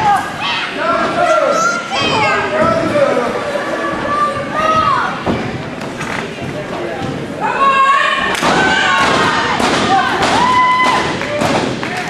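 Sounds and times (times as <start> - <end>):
people shouting: 7.4 - 12.0.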